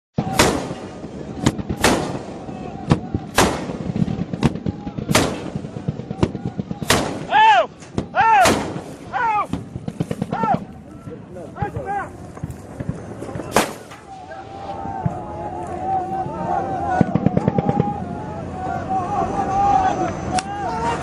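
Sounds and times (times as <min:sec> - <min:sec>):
heavy gun firing: 0:00.2 - 0:10.7, 0:11.6 - 0:14.1, 0:16.9 - 0:18.0
faint gunshots: 0:00.2 - 0:15.6, 0:16.9 - 0:18.2
men shouting: 0:04.6 - 0:09.6, 0:10.2 - 0:10.7, 0:14.1 - 0:21.0.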